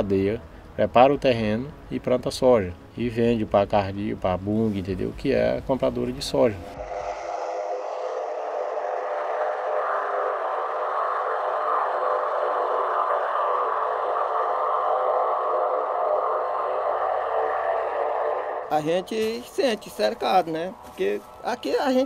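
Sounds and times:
steady droning hum: 0.0s - 22.0s.

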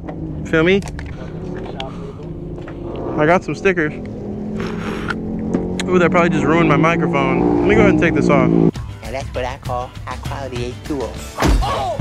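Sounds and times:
engine idling: 0.0s - 10.8s.

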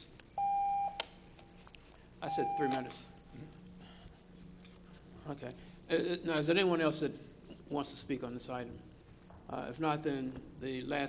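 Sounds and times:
electronic beep: 0.4s - 1.0s, 2.3s - 3.2s.

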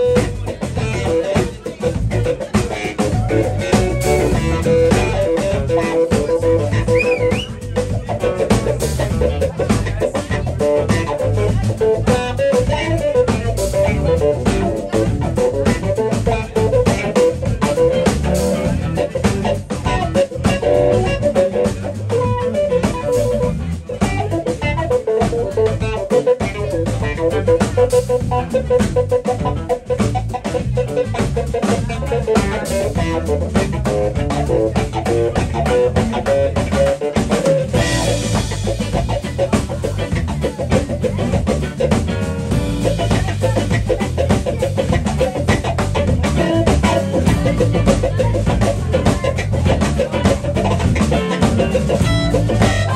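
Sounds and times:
bass guitar: 0.0s - 52.9s
drum kit: 0.0s - 52.9s
electric guitar: 0.0s - 52.9s
keyboard: 0.0s - 52.9s.

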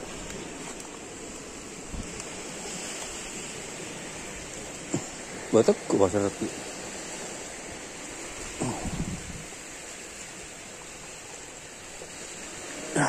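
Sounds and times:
outdoor background hiss: 0.0s - 13.0s.

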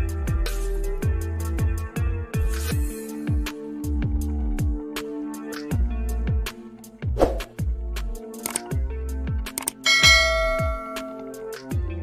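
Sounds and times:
bright bell chime: 9.9s - 11.3s.

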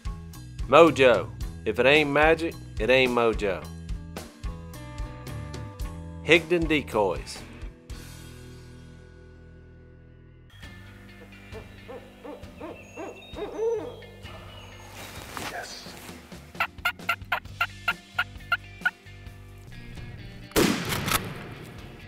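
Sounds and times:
turkey call yelping: 11.2s - 15.1s, 16.6s - 19.0s
owl hooting: 11.2s - 15.8s.

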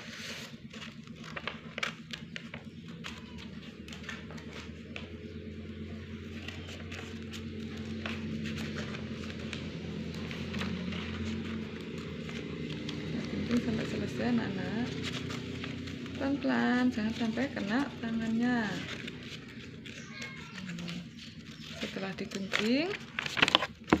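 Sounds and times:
paper rustling: 0.0s - 24.0s
steady low hum: 0.0s - 24.0s
scissors snipping paper: 0.1s - 5.1s, 6.2s - 16.2s, 17.0s - 24.0s.

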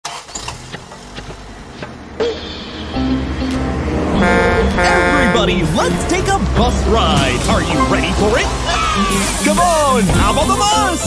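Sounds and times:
cartoon bus engine running: 0.0s - 11.0s.

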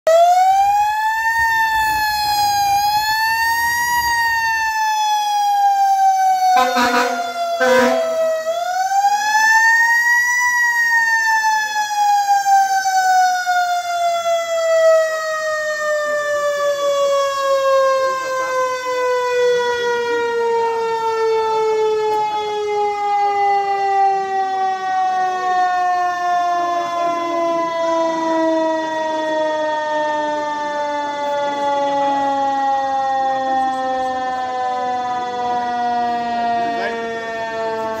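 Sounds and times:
fire truck mechanical siren: 0.0s - 38.0s.

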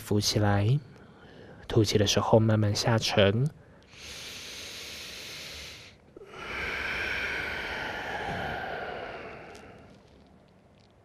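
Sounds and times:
man inhaling: 3.6s - 10.0s
man exhaling: 4.0s - 10.0s.

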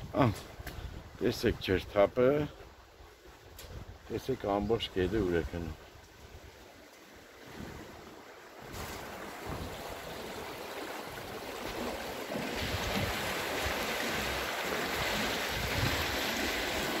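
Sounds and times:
water rushing through canal: 0.0s - 17.0s.

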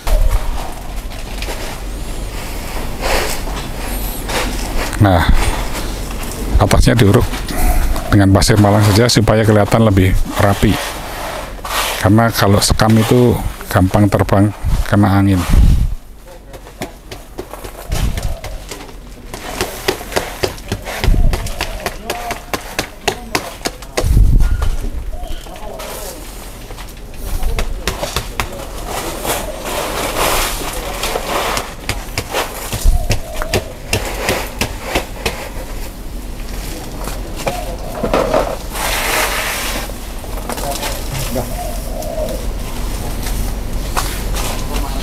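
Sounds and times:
sand scraping and rustling: 8.4s - 15.9s, 28.6s - 32.8s, 38.2s - 40.0s.

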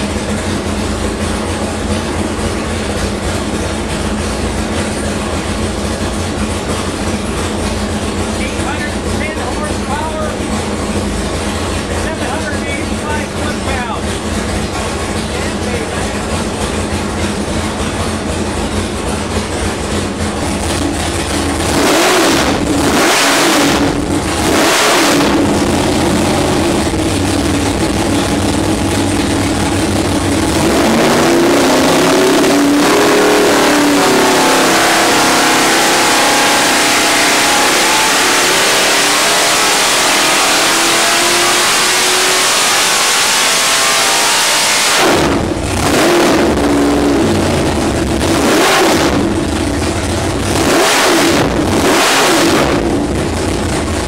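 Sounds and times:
engine revving: 0.0s - 54.0s.

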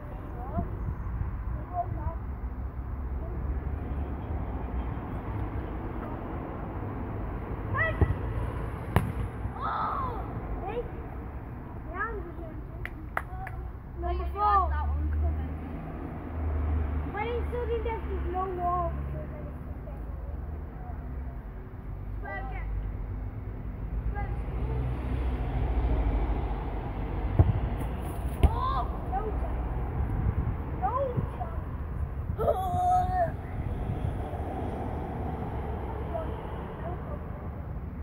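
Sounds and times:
wind rumbling on microphone: 29.8s - 36.0s.

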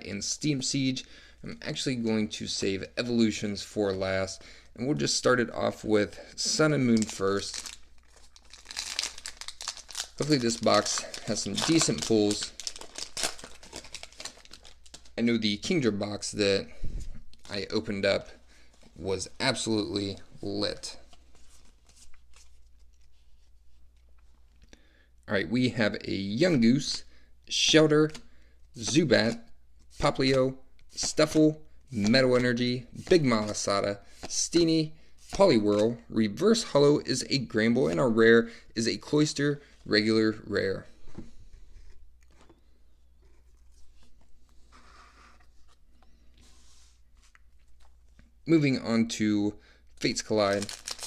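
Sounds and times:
trading cards rustling and clicking: 6.4s - 15.2s, 50.2s - 51.0s.

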